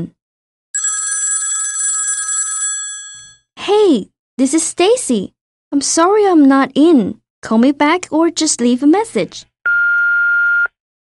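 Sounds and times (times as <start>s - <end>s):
telephone ringing: 0.8s - 3.5s.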